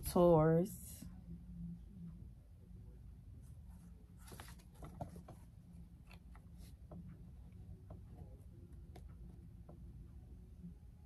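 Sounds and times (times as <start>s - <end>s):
low steady hum: 0.0s - 11.0s
cards being shuffled: 4.2s - 6.7s.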